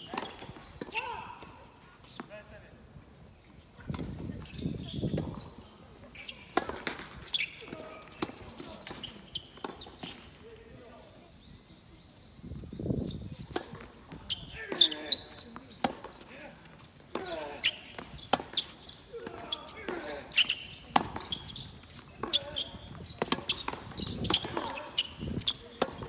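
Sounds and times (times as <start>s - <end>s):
shoe squeaks: 3.8s - 11.2s, 13.0s - 26.0s
tennis ball bouncing: 6.5s - 10.2s, 17.1s - 26.0s
racket striking ball: 23.2s - 26.0s.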